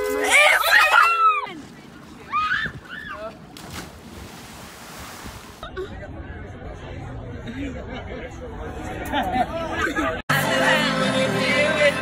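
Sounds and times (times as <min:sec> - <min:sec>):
water splash: 0:03.4 - 0:05.6.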